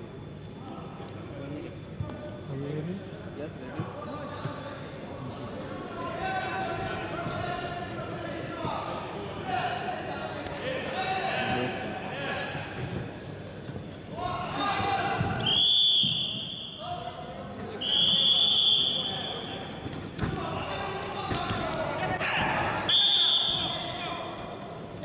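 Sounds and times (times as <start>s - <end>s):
people shouting in a hall: 14.1s - 19.6s, 20.2s - 24.4s
referee's whistle blasts: 15.4s - 16.9s, 17.8s - 19.6s, 22.8s - 24.1s.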